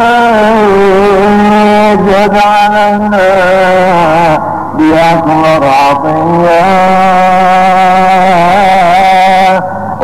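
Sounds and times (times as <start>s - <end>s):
man singing long held note: 0.0s - 10.0s.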